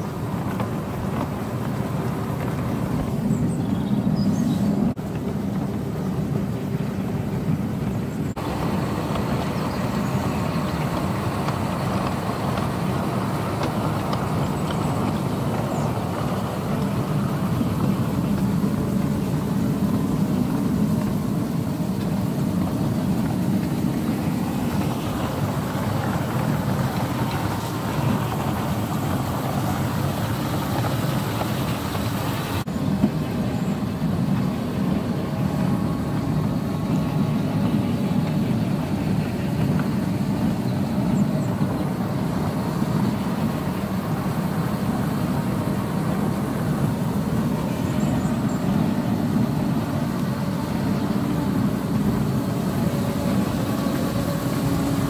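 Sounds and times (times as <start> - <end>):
miniature train wheels rumbling: 0.0 - 55.0.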